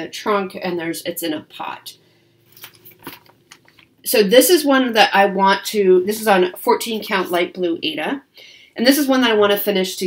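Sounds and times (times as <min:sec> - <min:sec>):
paper and fabric rustling: 0:02.5 - 0:03.9.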